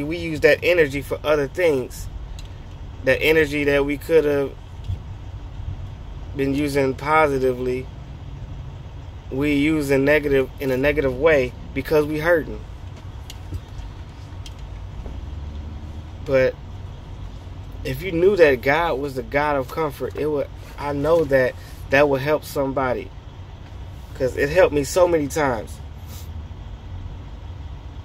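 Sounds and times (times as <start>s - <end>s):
vehicle engine rumbling: 0.0s - 28.0s.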